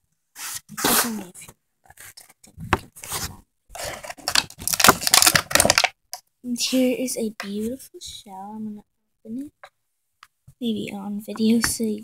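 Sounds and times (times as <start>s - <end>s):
plastic toys and packaging handled: 0.4s - 6.2s.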